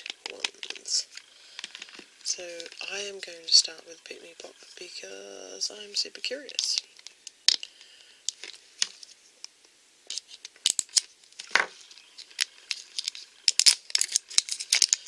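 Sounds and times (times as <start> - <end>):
plastic shrink-wrap crackling: 10.1 - 15.0.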